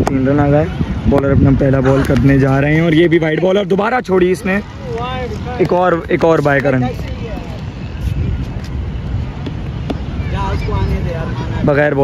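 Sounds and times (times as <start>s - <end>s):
faint distant voices: 0.0s - 12.0s
wind buffeting microphone: 0.0s - 12.0s.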